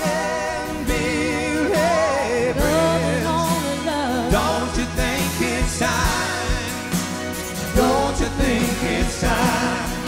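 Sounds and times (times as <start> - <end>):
woman and man singing: 0.0 - 7.0, 7.6 - 10.0
live band playing: 0.0 - 10.0.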